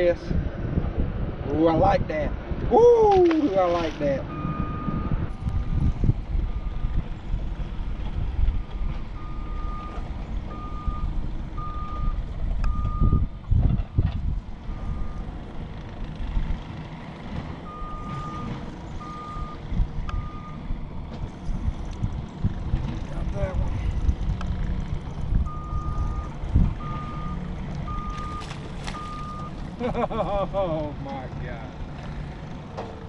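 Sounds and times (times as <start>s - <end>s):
wind rumble: 0.0s - 32.8s
water rumble: 17.3s - 31.1s.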